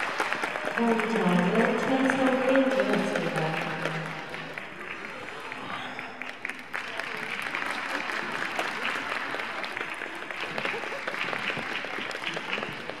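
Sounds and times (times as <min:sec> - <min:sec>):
audience applauding: 0:00.0 - 0:13.0
voices in crowd: 0:00.0 - 0:13.0.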